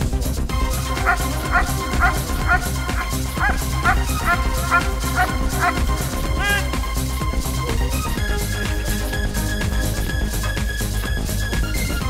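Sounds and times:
background music with steady beat: 0.0s - 12.0s
dog barking: 1.0s - 5.8s.

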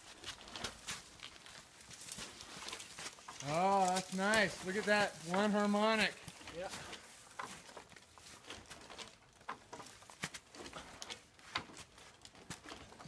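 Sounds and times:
dead tree creaking and clicking: 0.1s - 13.0s.

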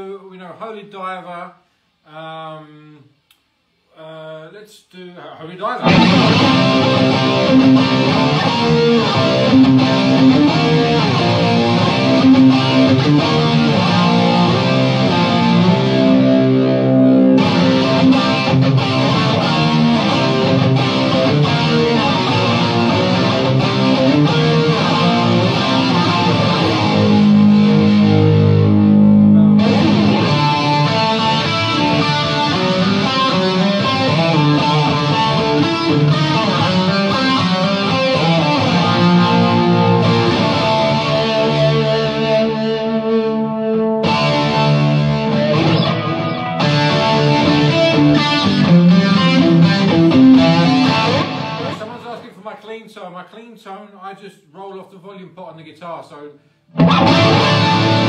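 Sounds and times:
distorted electric guitar riffs: 5.6s - 52.3s, 56.7s - 58.0s.

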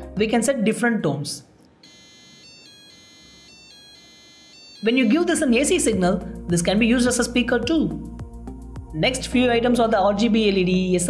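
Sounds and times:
buzzer beeping two pitches: 1.8s - 5.7s.

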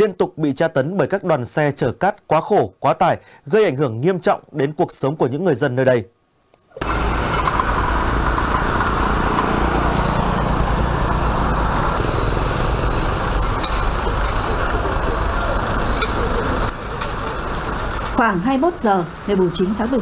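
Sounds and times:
dump truck engine rumble: 6.8s - 20.0s
road and tyre noise: 6.8s - 20.0s.

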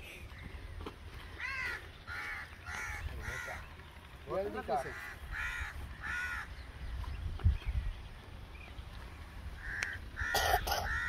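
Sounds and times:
crow cawing: 1.2s - 3.7s, 4.7s - 6.6s, 9.6s - 11.0s.

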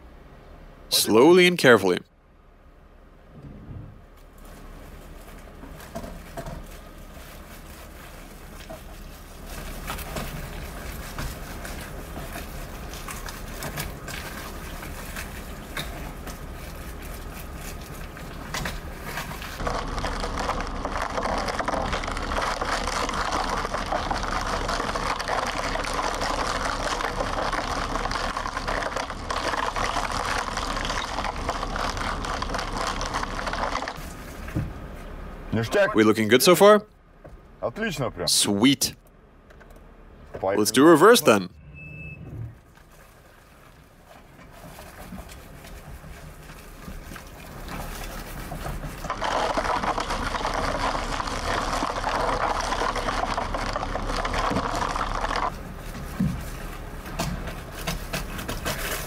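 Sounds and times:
low engine hum: 2.2s - 59.0s
low rumble: 3.2s - 4.2s, 41.5s - 43.0s
plastic bottles crackling on pavement: 4.3s - 34.6s, 42.9s - 59.0s.

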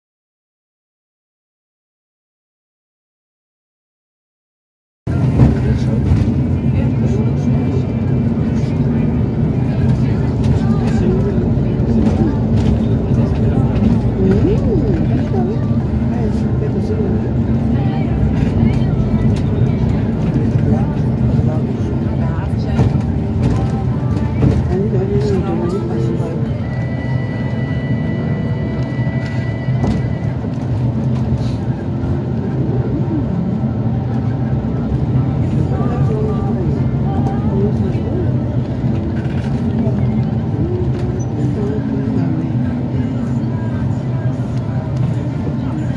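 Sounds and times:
bus engine and road noise: 5.1s - 45.9s.

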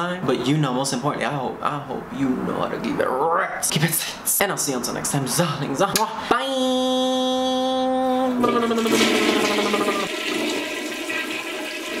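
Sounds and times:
toilet flushing: 8.4s - 12.0s.

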